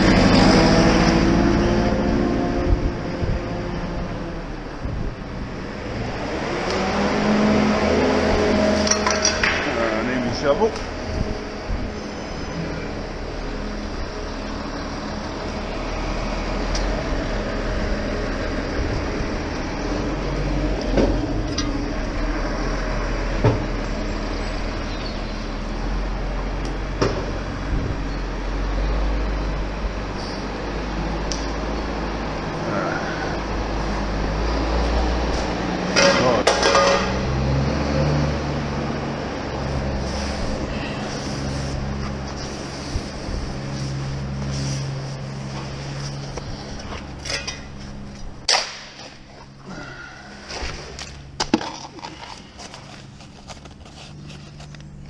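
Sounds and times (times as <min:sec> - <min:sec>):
engine running steadily: 0:00.0 - 0:55.0
hand tools scraping wet concrete: 0:39.7 - 0:45.3.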